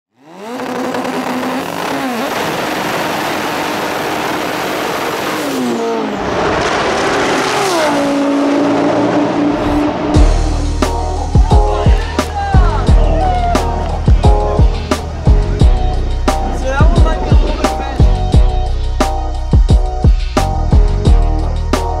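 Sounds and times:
car engine accelerating hard: 0:00.1 - 0:11.3.

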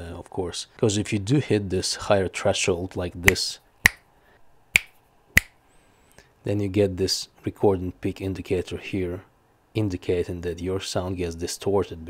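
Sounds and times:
sharp finger snaps: 0:03.3 - 0:04.1, 0:04.7 - 0:05.6.

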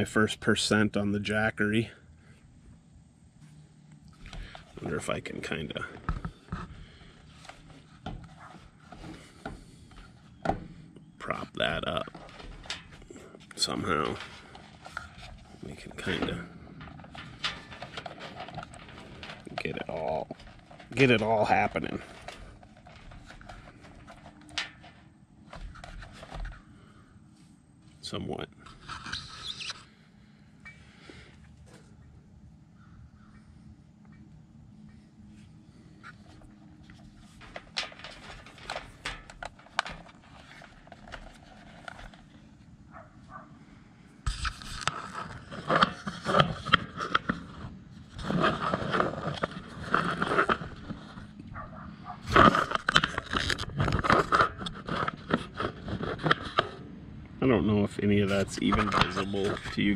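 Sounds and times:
camera handling scraping and rustling: 0:03.4 - 0:26.9, 0:28.6 - 0:30.0, 0:34.8 - 0:43.0, 0:44.2 - 0:56.9, 0:58.2 - 0:59.9.

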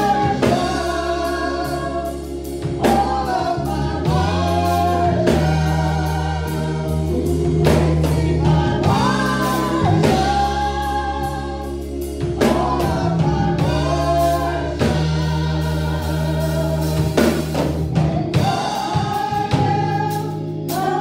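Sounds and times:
sustained low accompaniment chords: 0:00.0 - 0:21.0
women singing gospel: 0:00.0 - 0:21.0.

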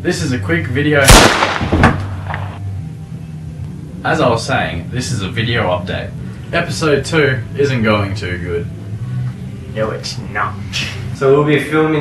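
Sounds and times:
steady low hum: 0:00.0 - 0:12.0
revolver gunshot crack: 0:01.0 - 0:02.6.

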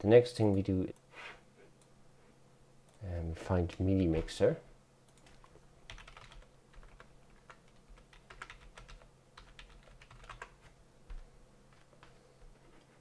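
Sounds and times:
low steady hum: 0:00.0 - 0:13.0
computer keyboard typing: 0:05.1 - 0:12.2.

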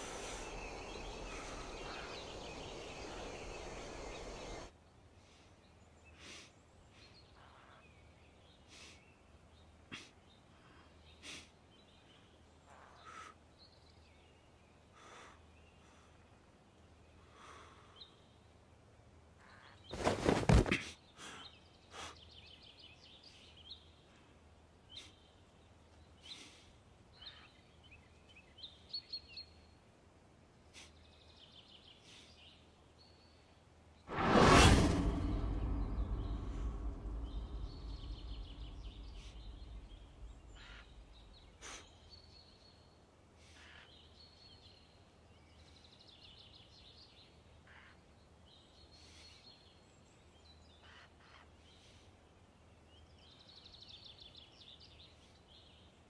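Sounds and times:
faint birds chirping: 0:00.0 - 0:34.1, 0:35.0 - 0:56.0
loud sudden bang: 0:34.1 - 0:41.2.

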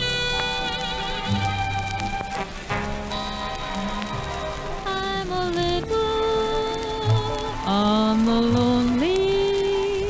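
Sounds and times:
big band orchestra sustained chords: 0:00.0 - 0:05.6
crackle and surface noise: 0:00.0 - 0:10.0.

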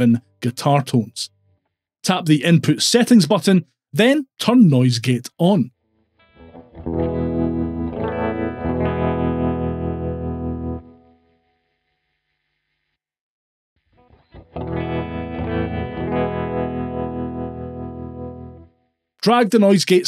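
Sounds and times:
electric guitar ringing chords: 0:06.2 - 0:11.6, 0:14.0 - 0:18.8.

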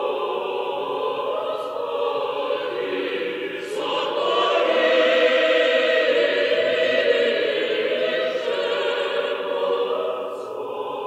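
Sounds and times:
church choir chanting: 0:00.0 - 0:11.0.

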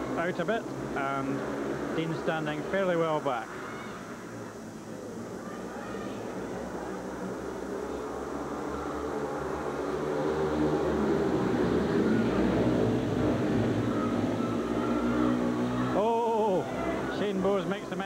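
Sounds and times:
motorbike engines racing: 0:00.0 - 0:03.7, 0:06.2 - 0:18.0.

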